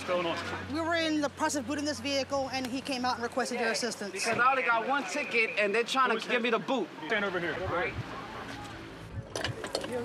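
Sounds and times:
faint street voices: 0.0 - 10.0.

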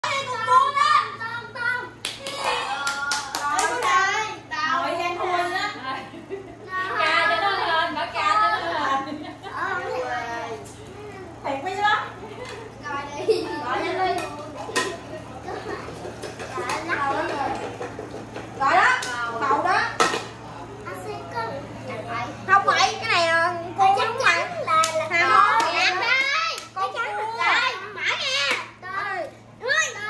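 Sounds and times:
children's voices: 0.0 - 4.8, 6.5 - 11.5, 12.4 - 17.6, 20.7 - 30.0
hand claps: 2.0 - 4.0.

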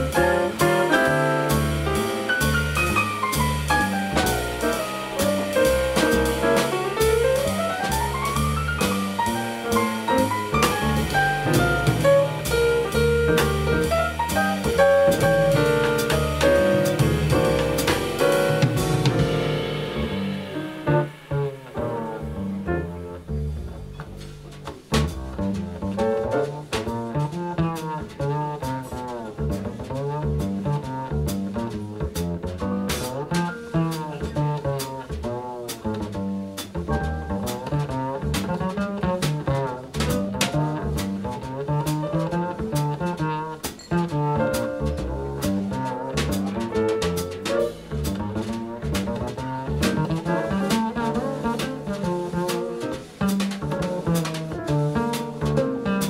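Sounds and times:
electric piano: 0.0 - 24.5, 42.0 - 56.0
double bass: 0.0 - 56.0
drum kit: 0.0 - 56.0.

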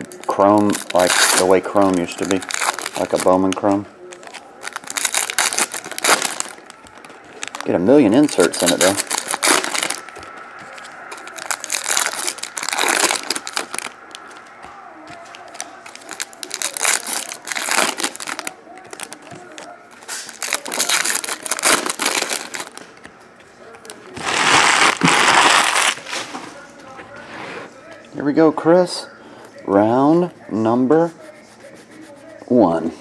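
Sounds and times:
foil wrappers torn and crinkled: 0.0 - 22.9, 23.8 - 26.3.

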